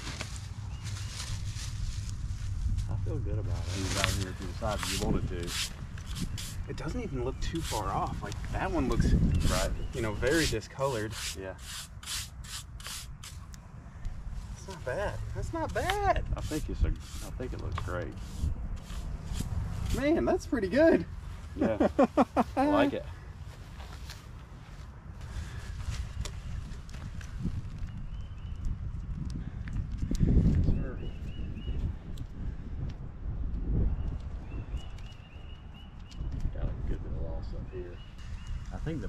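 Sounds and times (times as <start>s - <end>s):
wind rumbling on microphone: 0.0s - 39.0s
hand rubbing on marble: 3.6s - 13.4s, 15.6s - 20.1s.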